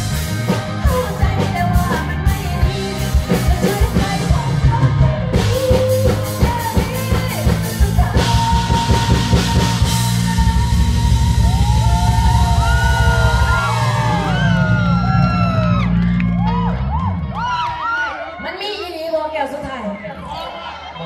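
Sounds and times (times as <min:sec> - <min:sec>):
live rock band playing: 0:00.0 - 0:18.8
crowd shouting and whooping: 0:10.3 - 0:21.0.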